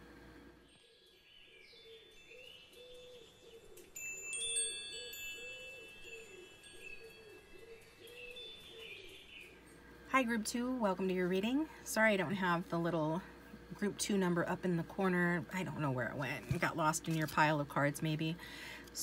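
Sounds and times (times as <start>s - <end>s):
wind chimes tinkling: 2.2s - 8.7s.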